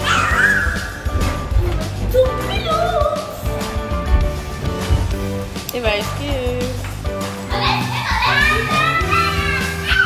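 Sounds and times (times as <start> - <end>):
children calling out: 0.0 - 1.1, 7.5 - 10.0
background music: 0.0 - 10.0.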